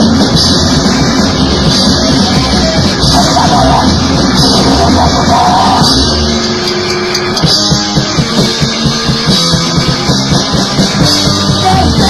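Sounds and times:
punk rock band: 0:00.0 - 0:12.0.

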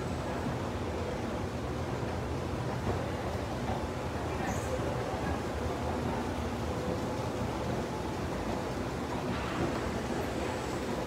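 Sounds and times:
shopping mall background rumble: 0:00.0 - 0:11.0.

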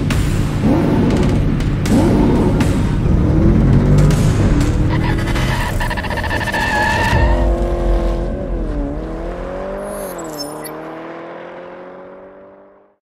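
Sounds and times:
tyre squeal: 0:04.9 - 0:07.6, 0:09.9 - 0:10.7.

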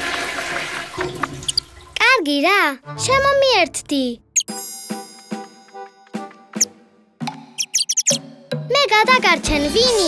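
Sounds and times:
flushing water: 0:00.0 - 0:02.0.

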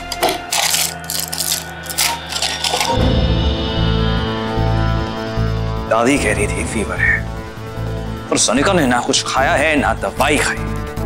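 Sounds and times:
small items clicking and rattling: 0:00.0 - 0:03.0
background music: 0:00.0 - 0:11.0.

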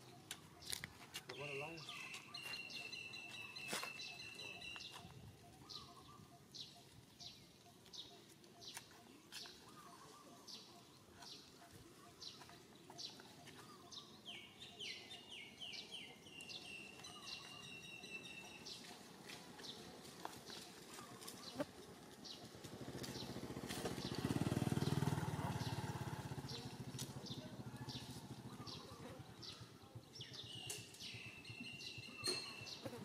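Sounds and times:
birds chirping: 0:00.0 - 0:33.0.

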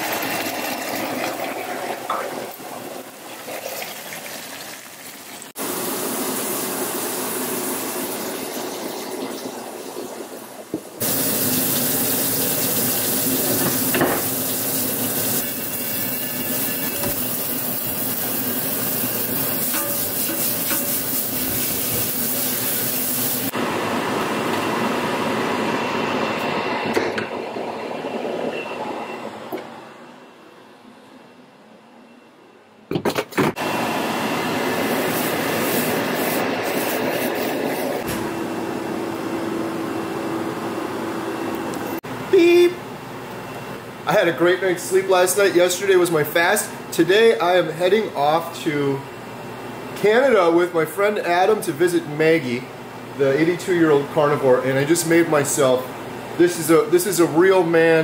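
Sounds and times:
kitchen sounds: 0:00.0 - 0:23.6
tap water running onto skillet: 0:10.7 - 0:23.5.

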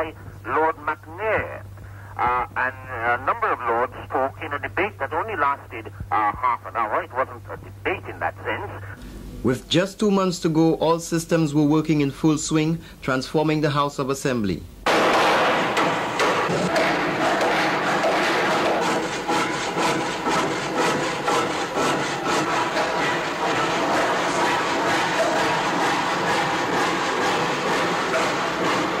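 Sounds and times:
din of work noise: 0:14.8 - 0:29.0
hammer knocking on wood: 0:14.9 - 0:29.0.

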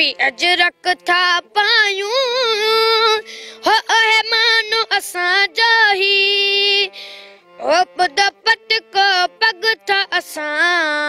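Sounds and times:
boy singing in high voice: 0:00.0 - 0:06.9, 0:07.6 - 0:11.0.

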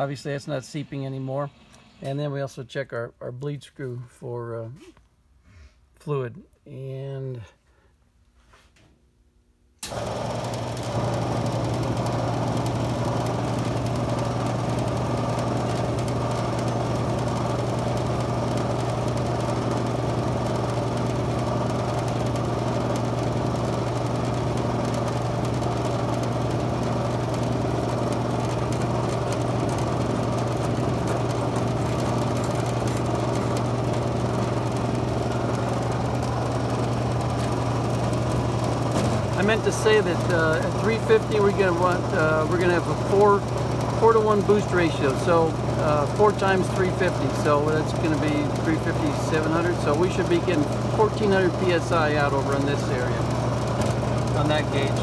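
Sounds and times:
electric vacuum pump humming: 0:09.8 - 0:55.0.

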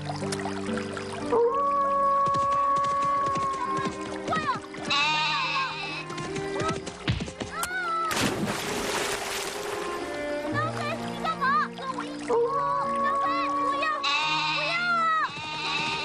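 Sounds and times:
soft background music: 0:00.0 - 0:16.0.

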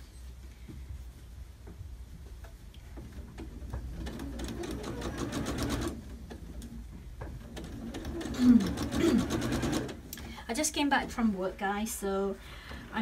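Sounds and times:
sewing machine stitching: 0:03.1 - 0:10.0.

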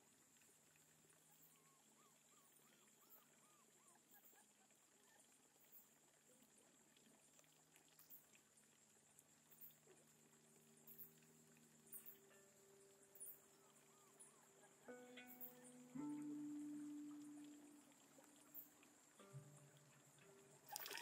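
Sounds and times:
faint chirps: 0:00.8 - 0:21.0
soft ticks: 0:06.7 - 0:20.7.

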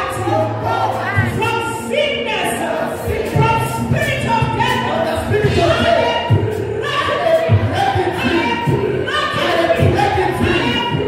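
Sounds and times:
group singing worship song: 0:00.0 - 0:11.0.

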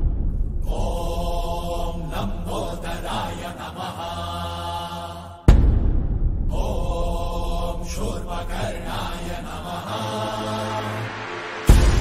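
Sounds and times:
devotional mantra chanting: 0:00.6 - 0:05.5, 0:06.5 - 0:12.0
music with low drone: 0:05.5 - 0:12.0.

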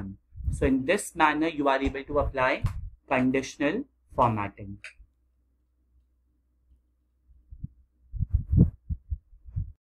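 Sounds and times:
low muffled thumps: 0:00.3 - 0:00.7, 0:01.8 - 0:03.0, 0:07.5 - 0:09.8.

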